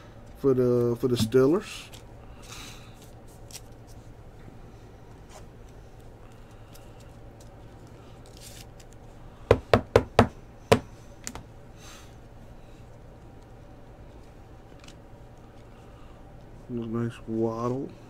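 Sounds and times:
rustling of plastic and card: 1.6s - 4.1s, 5.3s - 9.2s.

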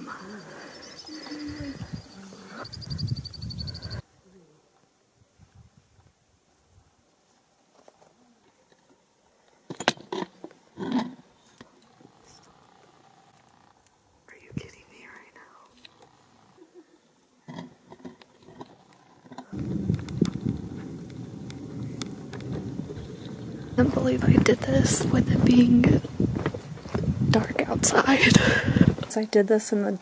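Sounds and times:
person whispering: 14.3s - 15.8s
steady rushing noise: 19.5s - 29.2s.

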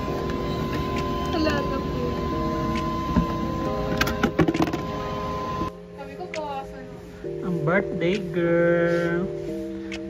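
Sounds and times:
steady mechanical hum: 0.0s - 6.2s.

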